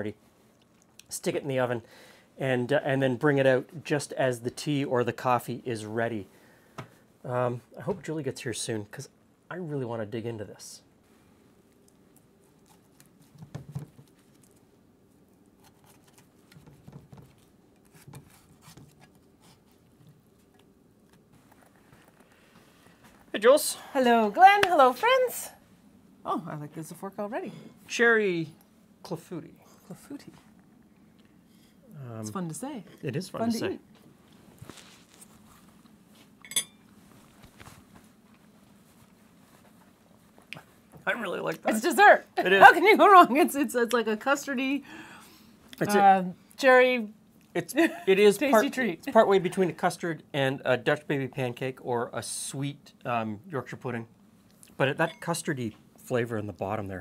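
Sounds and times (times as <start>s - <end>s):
faint chewing: 0.4s - 1.1s, 11.6s - 13.4s, 14.0s - 18.4s
fork clinking: 36.4s - 36.8s.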